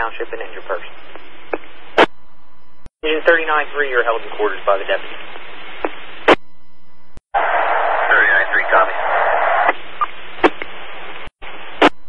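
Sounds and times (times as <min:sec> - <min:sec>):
radio hiss: 0:03.0 - 0:06.4, 0:07.4 - 0:12.0
radio static burst: 0:07.4 - 0:12.0
faint unintelligible radio voice: 0:08.0 - 0:09.2.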